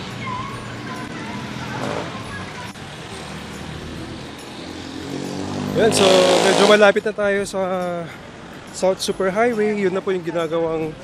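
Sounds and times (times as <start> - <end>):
motorcycles: 0.0 - 8.8
road noise hum: 0.0 - 11.0
vehicle engines running: 0.0 - 11.0.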